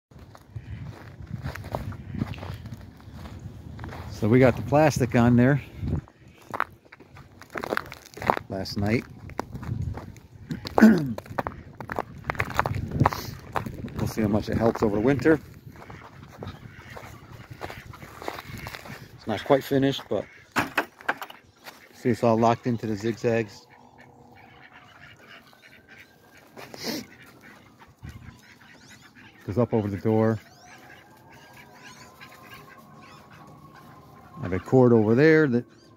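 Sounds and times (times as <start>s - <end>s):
footsteps crunching in snow: 0.2s - 20.2s, 21.6s - 22.2s, 24.4s - 34.8s
duck call: 21.3s - 35.9s.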